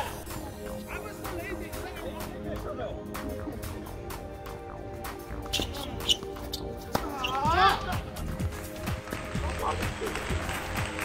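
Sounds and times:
background music: 0.0s - 11.0s
tennis ball impacts: 5.4s - 7.2s.

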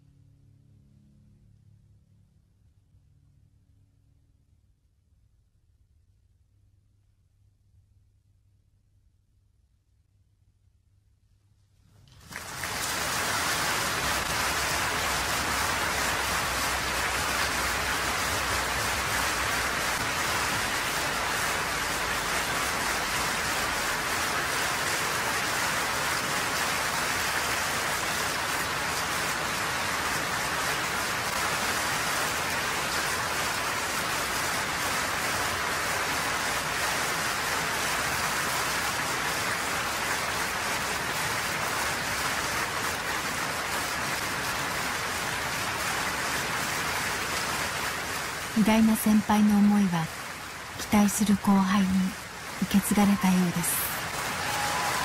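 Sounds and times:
audience applause: 12.1s - 49.9s, 50.6s - 55.0s.

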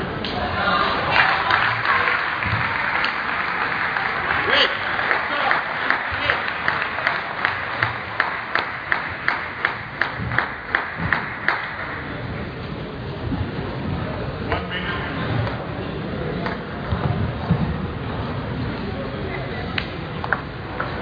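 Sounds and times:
crowd chatter in a hall: 0.0s - 21.0s
spectators clapping in unison: 1.0s - 12.2s.

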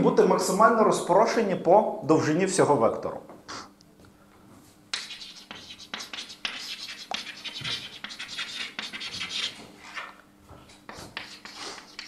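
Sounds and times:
chalk scratching on blackboard: 4.9s - 12.0s
chalk tapping: 4.9s - 12.0s.

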